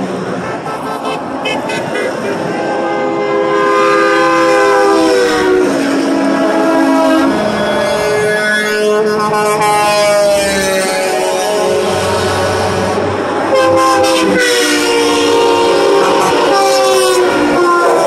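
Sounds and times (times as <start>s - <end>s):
highway traffic noise: 0.0s - 18.0s
truck air horns: 0.5s - 18.0s.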